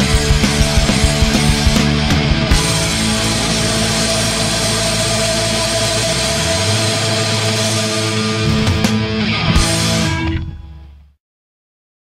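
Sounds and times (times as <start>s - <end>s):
distorted guitar noise: 0.0s - 11.2s.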